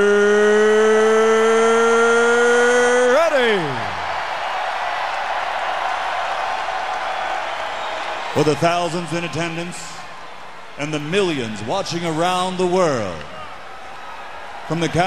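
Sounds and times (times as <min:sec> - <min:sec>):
arena crowd roaring: 0:00.0 - 0:15.0.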